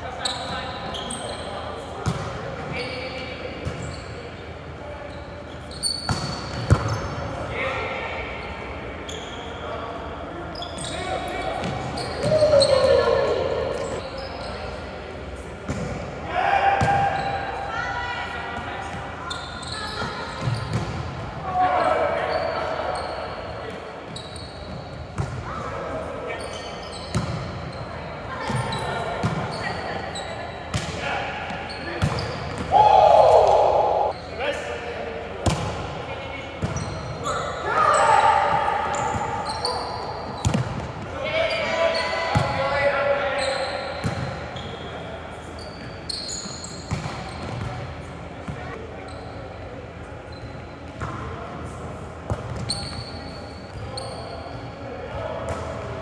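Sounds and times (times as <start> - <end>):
players shouting and chatting: 6.9 - 24.5, 25.3 - 45.7.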